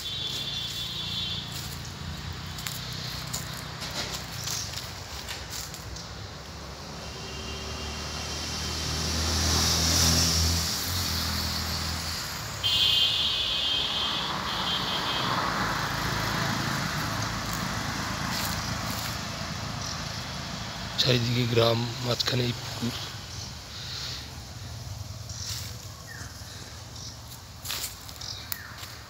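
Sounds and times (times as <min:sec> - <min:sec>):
vehicle passing: 0:00.0 - 0:12.6, 0:14.0 - 0:29.0
traffic hiss: 0:00.0 - 0:29.0.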